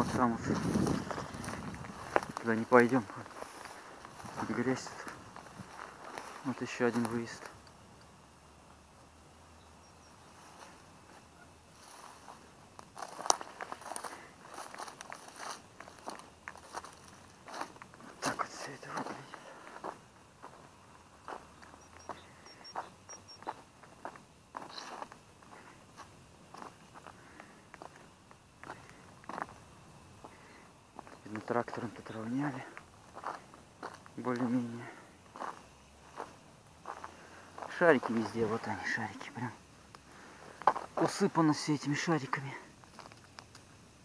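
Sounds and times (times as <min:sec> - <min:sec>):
footsteps crunching on rubble: 0:00.0 - 0:07.6, 0:11.8 - 0:29.6, 0:30.2 - 0:39.4, 0:40.2 - 0:41.4, 0:42.8 - 0:43.4.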